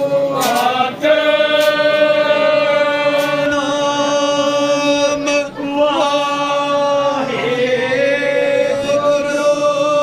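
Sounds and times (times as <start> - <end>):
voices chanting long note: 0.0 - 10.0.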